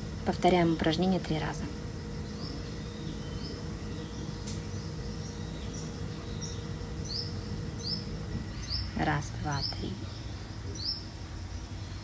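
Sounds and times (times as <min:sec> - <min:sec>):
low background hum: 0:00.0 - 0:12.0
bird chirping: 0:00.6 - 0:12.0.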